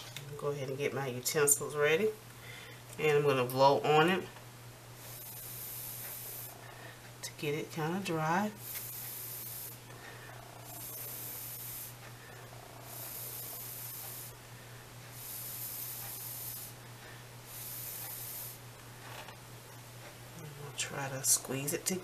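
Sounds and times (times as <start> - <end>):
person blowing puffs: 5.0 - 6.6, 8.6 - 9.8, 10.7 - 12.0, 12.8 - 14.4, 15.1 - 16.8, 17.4 - 18.6.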